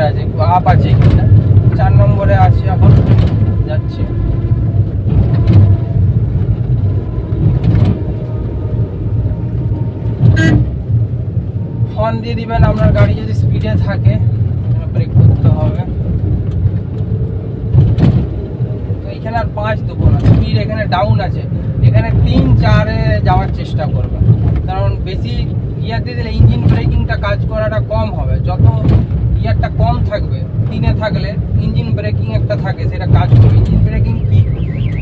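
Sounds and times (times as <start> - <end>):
people talking: 0.0 - 2.9, 12.0 - 14.2, 14.8 - 15.9, 19.1 - 34.5
car engine and road rumble: 0.0 - 35.0.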